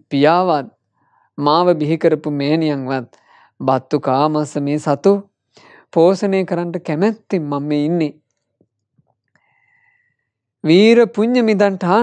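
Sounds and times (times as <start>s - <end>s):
man speaking: 0.0s - 0.7s, 1.4s - 5.3s, 5.9s - 8.2s, 10.6s - 12.0s.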